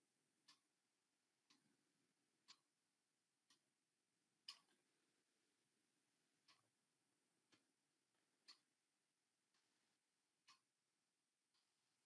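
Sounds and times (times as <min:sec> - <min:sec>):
clock ticking: 0:00.4 - 0:00.8, 0:01.4 - 0:02.8, 0:03.4 - 0:03.7, 0:04.4 - 0:10.8, 0:11.5 - 0:12.0.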